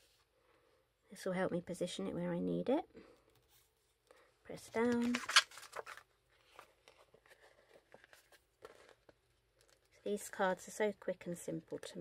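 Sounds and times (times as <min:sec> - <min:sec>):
faint handling noises: 0:03.1 - 0:10.1
plastic sticker sheet crinkling: 0:04.8 - 0:09.9.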